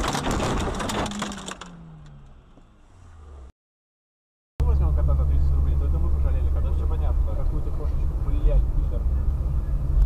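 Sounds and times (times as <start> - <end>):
burst of crackling and clattering: 0.0 - 2.2.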